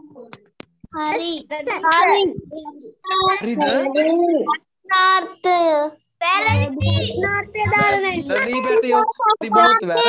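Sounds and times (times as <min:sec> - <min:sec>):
child calling out sing-song: 0:06.5 - 0:08.1.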